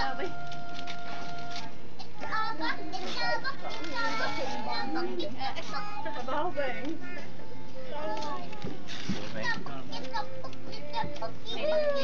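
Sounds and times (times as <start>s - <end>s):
young children talking excitedly: 2.0s - 9.9s.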